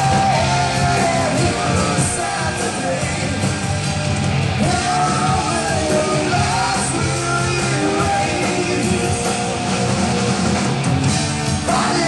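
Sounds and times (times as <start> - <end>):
distorted electric guitars: 0.0 - 12.0
live rock band playing: 0.0 - 12.0.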